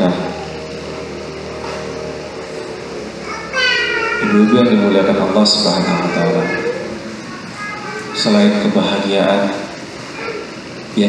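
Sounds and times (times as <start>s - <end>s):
engine humming steadily: 0.0s - 11.0s.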